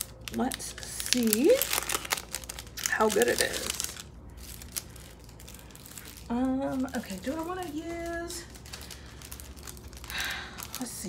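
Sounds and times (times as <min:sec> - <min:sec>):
paper and card rustling: 0:00.0 - 0:11.0.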